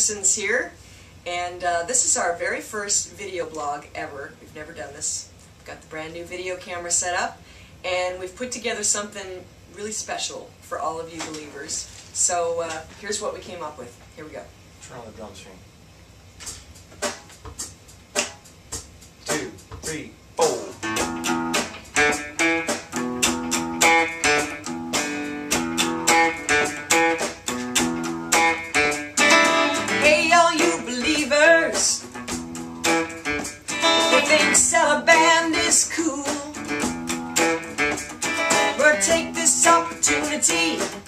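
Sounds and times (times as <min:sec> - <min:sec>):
guitar strumming chords: 0:20.4 - 0:41.0
woman singing: 0:29.7 - 0:32.0, 0:33.9 - 0:36.7, 0:38.5 - 0:41.0.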